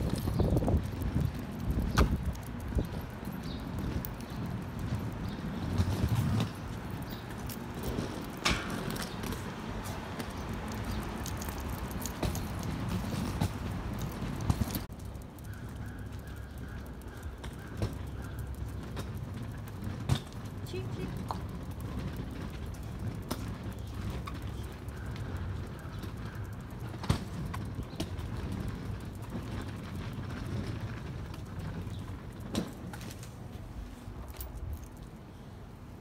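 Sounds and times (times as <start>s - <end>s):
footsteps on pavement: 0.0s - 35.2s
street noise rumble: 0.0s - 36.0s.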